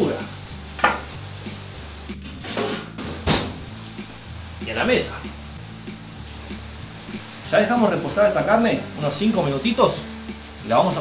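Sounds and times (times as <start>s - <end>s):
background music: 0.0s - 11.0s
meat sizzling: 0.0s - 11.0s
oven door shutting: 2.2s - 3.7s.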